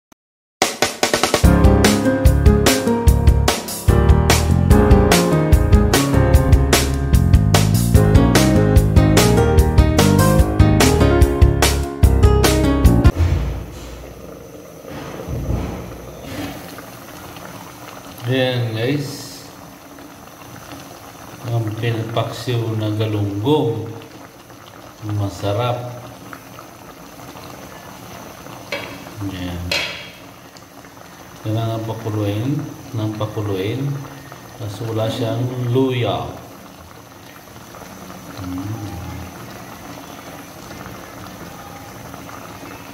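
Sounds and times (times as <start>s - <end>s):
broth bubbling in a pan: 13.1s - 42.9s.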